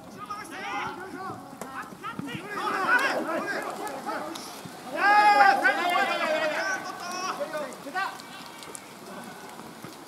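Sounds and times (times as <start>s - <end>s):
men shouting and calling: 0.1s - 8.2s.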